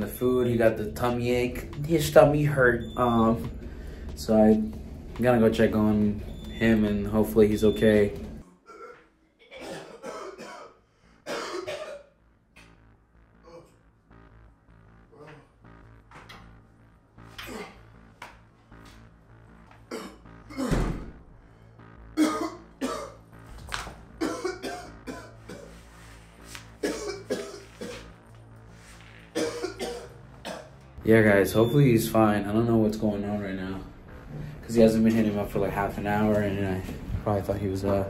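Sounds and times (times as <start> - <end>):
man coughing: 8.7 - 12.2, 19.9 - 20.9, 22.2 - 23.2, 24.2 - 25.8, 26.8 - 28.1, 29.3 - 30.7.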